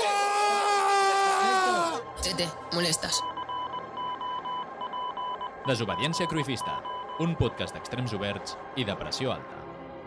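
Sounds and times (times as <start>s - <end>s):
electronic beeps: 2.0s - 8.2s.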